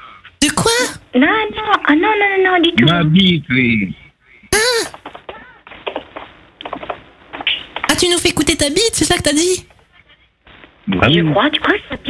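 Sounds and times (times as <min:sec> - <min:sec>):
muffled sound fragments: 0:04.6 - 0:12.0.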